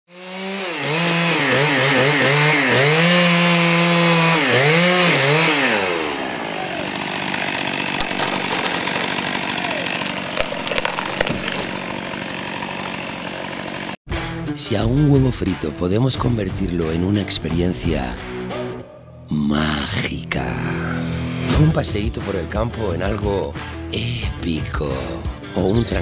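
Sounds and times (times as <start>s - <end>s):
chainsaw revving and cutting: 0.1s - 14.0s
wood cracking: 6.8s - 13.9s.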